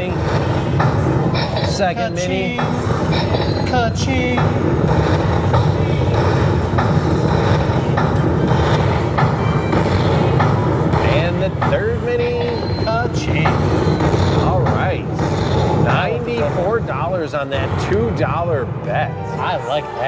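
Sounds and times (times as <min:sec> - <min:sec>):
background chatter: 0:00.0 - 0:20.0.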